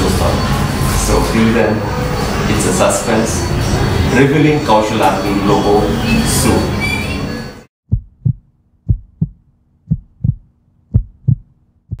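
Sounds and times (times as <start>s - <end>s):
heartbeat thumps: 7.9s - 12.0s.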